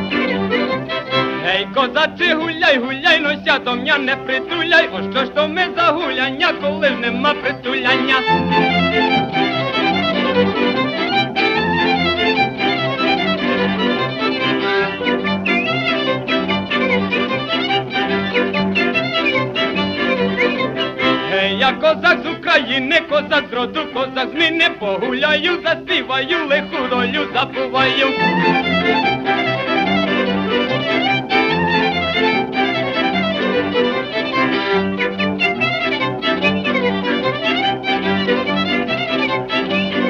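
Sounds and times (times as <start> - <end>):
fiddle-led folk tune: 0.0 - 40.0
person singing high yodel-like: 1.4 - 8.6, 21.3 - 28.6.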